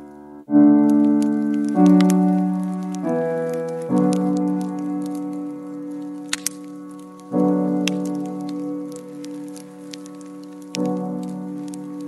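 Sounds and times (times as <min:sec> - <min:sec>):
soft piano chords: 0:00.0 - 0:12.0.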